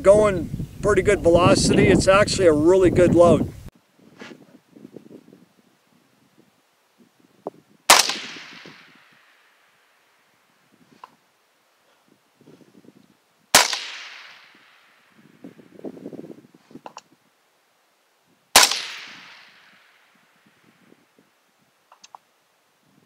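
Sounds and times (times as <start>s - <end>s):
suppressed rifle shot: 7.9s - 9.3s, 13.5s - 15.0s, 18.6s - 19.9s
faint click: 21.9s - 22.2s.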